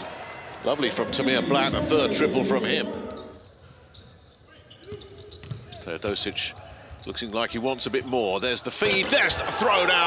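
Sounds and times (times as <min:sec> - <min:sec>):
commentary: 0:00.6 - 0:03.4.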